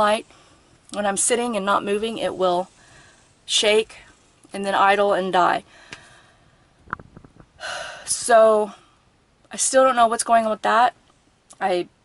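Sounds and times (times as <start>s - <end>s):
intake of breath: 2.7s - 3.4s, 5.7s - 6.8s.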